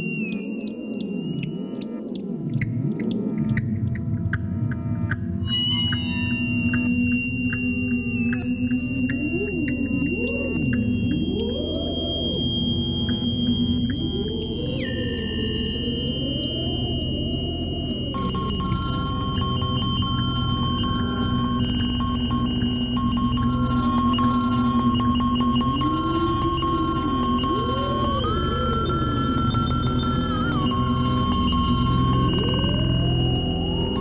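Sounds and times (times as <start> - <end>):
high whistling feedback tones: 0.0 - 2.9, 5.4 - 34.0
low electronic drone: 0.0 - 34.0
wavering sliding tones: 5.4 - 34.0.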